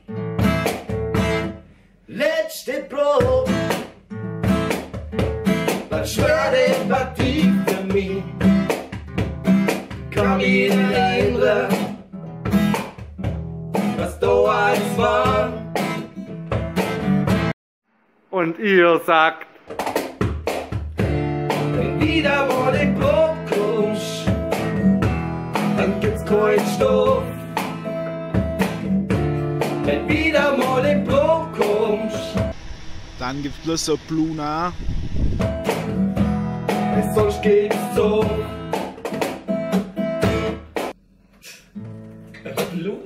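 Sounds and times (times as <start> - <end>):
acoustic guitar strumming: 0.0 - 1.6, 3.2 - 17.5, 19.5 - 32.6, 35.4 - 41.0.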